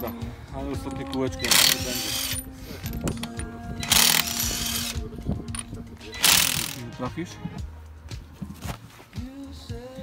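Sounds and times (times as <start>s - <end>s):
wrench on wheel nuts: 0.0s - 7.1s.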